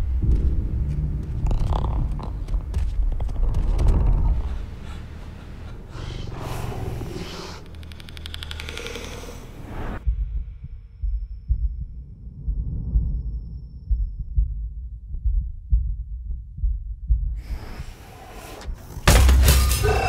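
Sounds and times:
low thuds: 0.0s - 5.9s
low rumble: 0.0s - 19.7s
scattered clicks: 7.6s - 9.7s.

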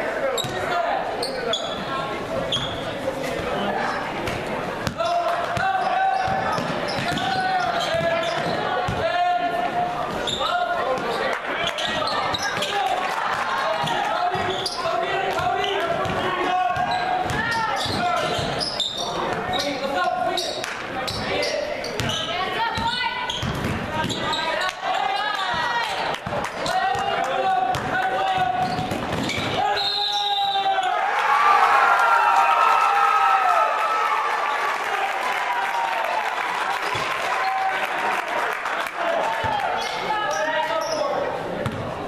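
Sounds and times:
voices and shouts: 4.8s - 41.5s
basketball bouncing on hardwood: 22.8s - 24.2s.

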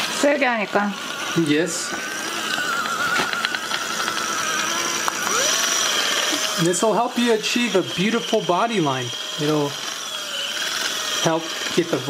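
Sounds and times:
electric motor whine: 0.0s - 12.0s.

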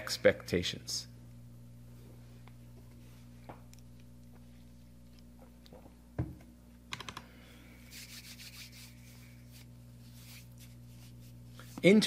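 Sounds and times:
steady low hum: 0.0s - 12.0s
scratchy rubbing: 7.9s - 11.5s.

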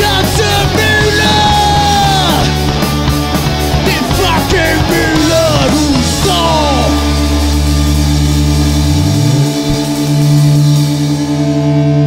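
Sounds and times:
punk rock band distorted chord: 0.0s - 12.0s
low note sliding upward: 6.9s - 12.0s.

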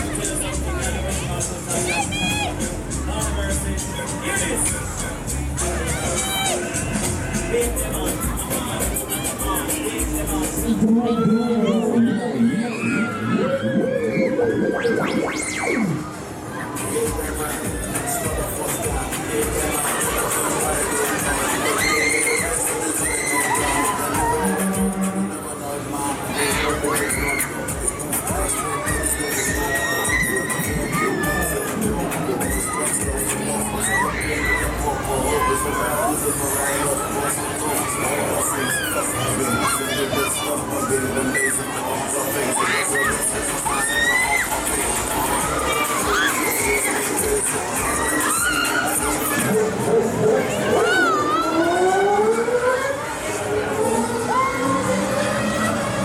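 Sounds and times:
fairground music with bass beat: 0.0s - 25.3s, 26.4s - 38.0s, 43.0s - 50.2s
riders screaming: 21.0s - 25.0s, 28.4s - 40.1s, 42.4s - 49.5s, 50.6s - 56.0s.

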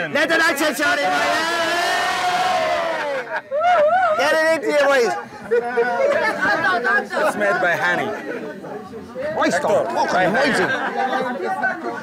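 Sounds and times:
excited voices: 0.0s - 8.2s
men cheering: 0.3s - 4.6s.

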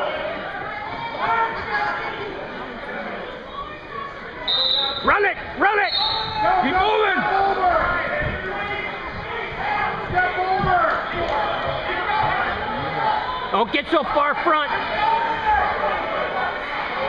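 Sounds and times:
spectators shouting: 4.5s - 17.0s.

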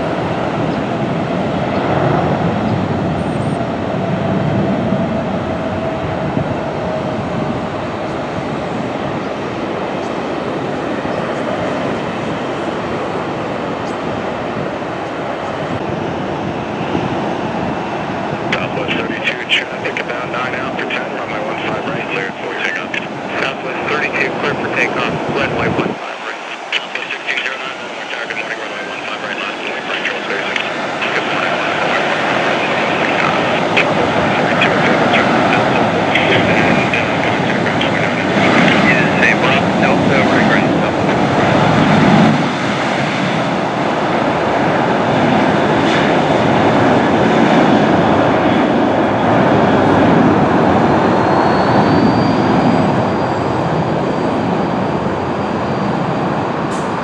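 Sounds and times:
jet engines at takeoff thrust: 0.0s - 57.0s.

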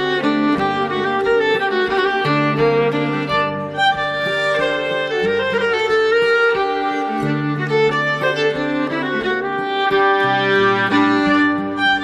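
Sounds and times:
folk fiddle tune: 0.0s - 12.0s.

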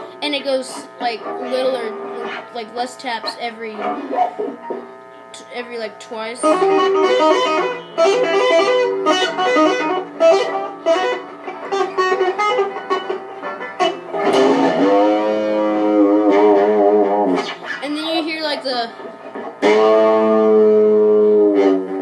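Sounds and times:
electric guitar tapping: 0.0s - 22.0s.

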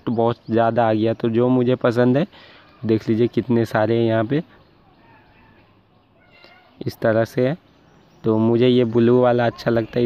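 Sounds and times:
man talking: 0.0s - 4.6s, 6.8s - 10.0s.

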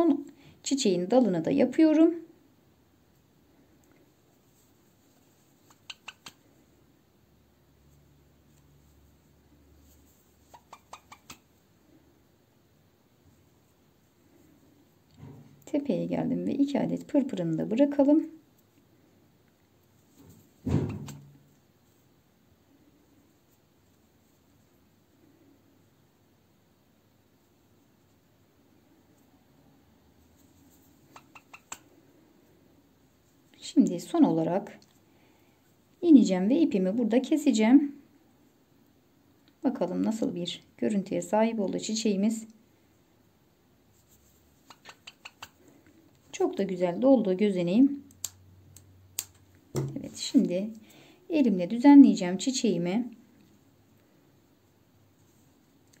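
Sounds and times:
small faint clicks: 48.0s - 49.6s.

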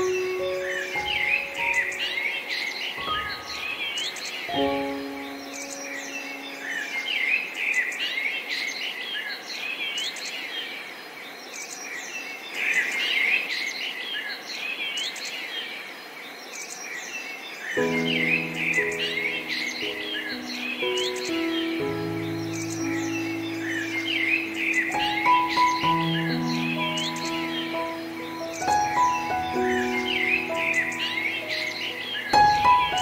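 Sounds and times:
slow piano chords: 0.0s - 7.8s, 17.8s - 33.0s
songbirds chirping and singing: 0.0s - 33.0s.

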